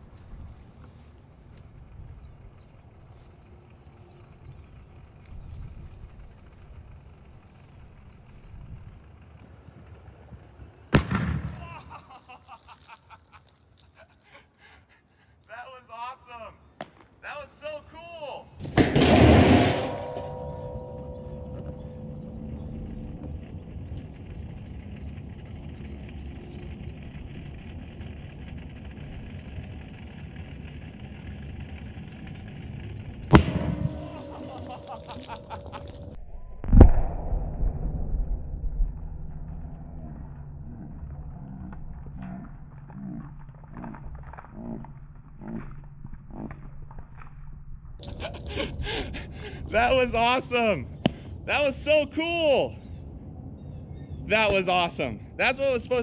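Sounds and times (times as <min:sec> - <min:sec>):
heavy boom with low rumble: 0:10.9 - 0:11.6, 0:33.2 - 0:34.7, 0:35.9 - 0:42.1
sharp crack: 0:10.9 - 0:14.1, 0:26.6 - 0:45.0.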